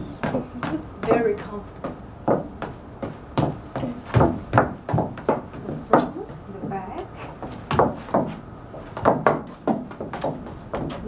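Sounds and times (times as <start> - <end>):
footsteps on wooden deck boards: 0.0 - 11.0.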